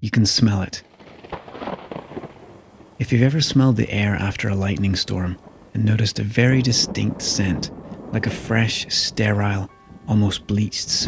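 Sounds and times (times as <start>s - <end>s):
rain: 0.0s - 11.0s
thunder crackles: 0.2s - 11.0s.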